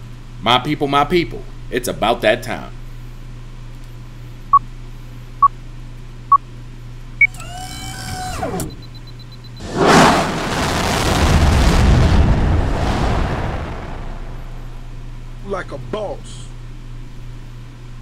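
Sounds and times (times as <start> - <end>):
rocket launch roar: 9.6 - 15.1
faint low hum: 12.2 - 18.0.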